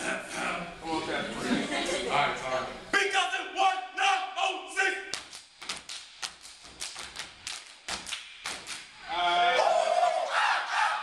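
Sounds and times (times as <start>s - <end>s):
hand claps and slaps: 5.1s - 9.0s.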